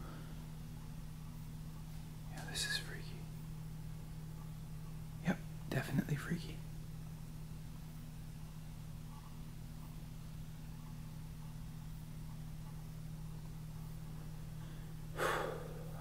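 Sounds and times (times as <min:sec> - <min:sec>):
faint low hum: 0:00.0 - 0:16.0
sharp breath: 0:14.8 - 0:16.0.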